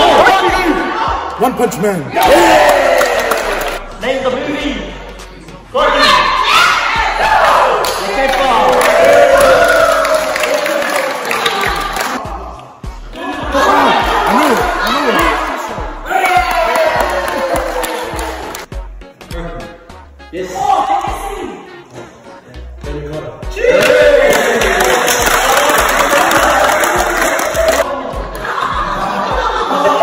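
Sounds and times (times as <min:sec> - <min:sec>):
crowd shouting and cheering: 0:00.0 - 0:05.0, 0:05.7 - 0:18.7, 0:23.4 - 0:30.0
music with bass beat: 0:18.0 - 0:20.4, 0:21.0 - 0:30.0.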